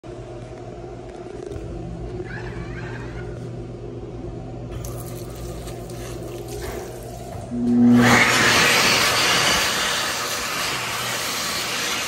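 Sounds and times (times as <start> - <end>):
building machinery hum: 0.1 - 12.0.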